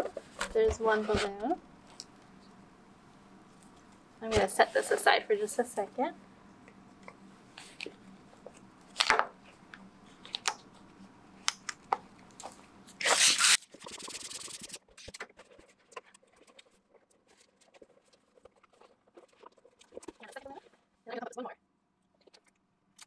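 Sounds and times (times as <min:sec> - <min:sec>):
balloon pump rush of air: 0:13.0 - 0:14.8.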